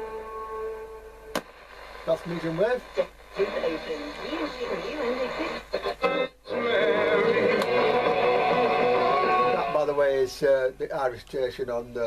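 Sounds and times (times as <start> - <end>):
radio steady held note: 0.0 - 11.4.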